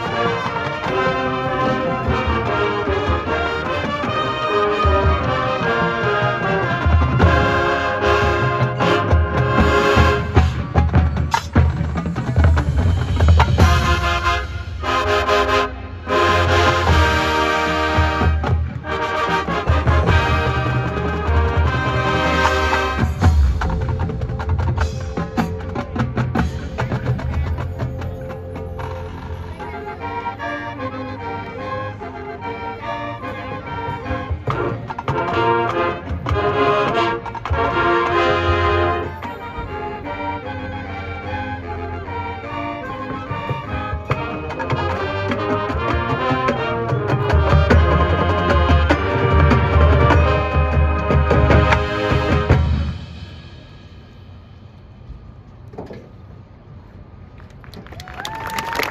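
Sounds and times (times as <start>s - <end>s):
brass sustained chords: 0.0s - 10.6s, 13.6s - 23.6s, 24.7s - 54.6s
drumline strikes: 0.0s - 29.7s, 33.8s - 40.4s, 43.2s - 55.3s.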